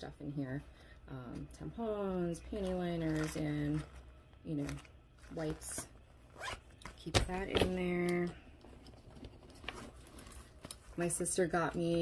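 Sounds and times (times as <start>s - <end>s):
rummaging in a handbag: 1.3s - 12.0s.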